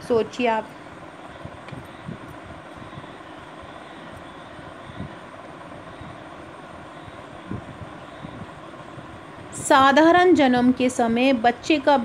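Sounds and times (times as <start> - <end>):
hiss over low rumble: 0.0 - 12.0.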